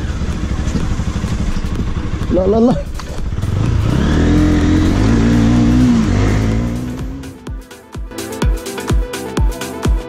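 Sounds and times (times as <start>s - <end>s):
motorcycle engine running: 0.0s - 7.7s
electronic dance music: 6.9s - 10.0s.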